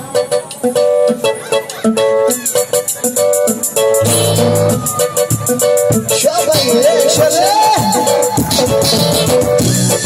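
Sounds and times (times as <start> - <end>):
choppy electric guitar riff: 1.1 - 10.0
steady cymbal beat: 2.9 - 9.0.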